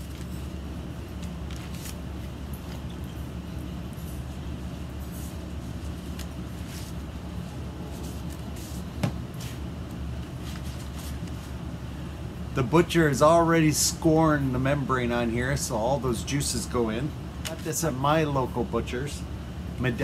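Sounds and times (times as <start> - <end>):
rustling of butcher paper: 0.0 - 2.9, 5.1 - 9.6
steady low hum: 0.0 - 20.0.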